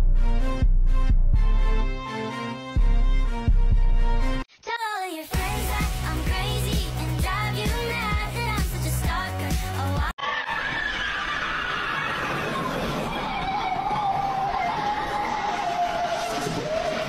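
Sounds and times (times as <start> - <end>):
pop music with a beat: 5.1 - 10.2
distorted noisy rush with falling wail: 12.0 - 17.0.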